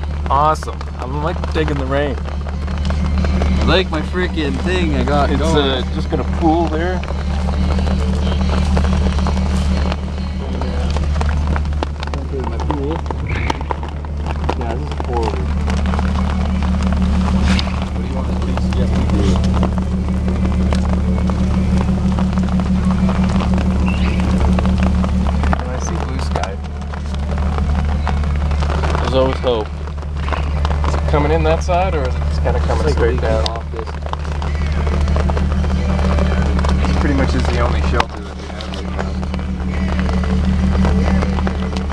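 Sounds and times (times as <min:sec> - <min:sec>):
car engine idling: 0:00.0 - 0:41.9
rain on plastic tarp: 0:00.0 - 0:41.9.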